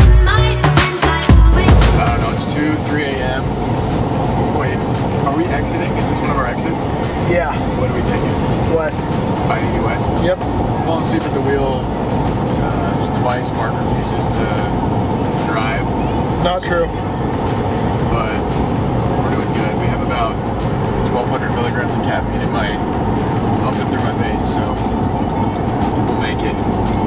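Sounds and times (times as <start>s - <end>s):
music with heavy beat: 0.0s - 5.5s
truck road and engine noise: 0.0s - 27.0s.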